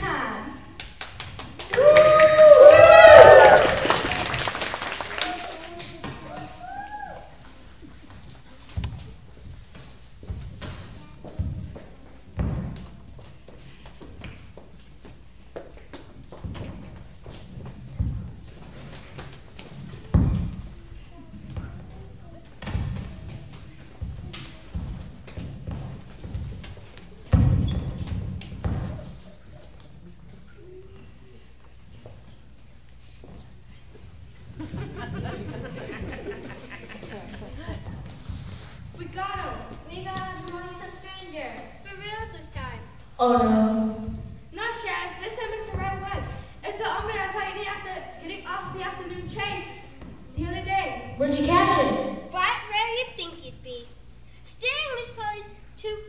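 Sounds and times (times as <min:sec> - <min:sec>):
footsteps on hollow stage: 0:05.3 - 0:30.2, 0:31.1 - 0:55.3.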